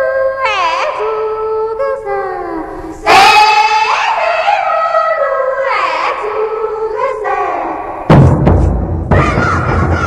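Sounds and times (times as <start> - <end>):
women singing with sliding notes: 0.0 - 8.1.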